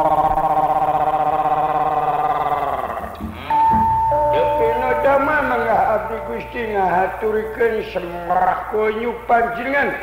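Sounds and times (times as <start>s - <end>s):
man's sustained vocal cry: 0.0s - 3.6s.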